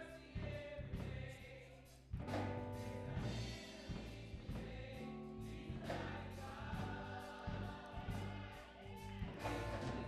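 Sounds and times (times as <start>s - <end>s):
gospel choir singing: 0.0s - 10.0s
sustained low bass: 0.0s - 10.0s
drum hits: 9.3s - 10.0s.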